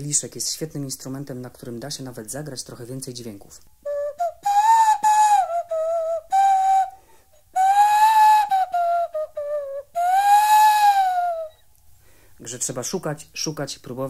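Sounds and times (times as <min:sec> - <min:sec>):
breathy whistling glass rim: 0:03.9 - 0:11.7.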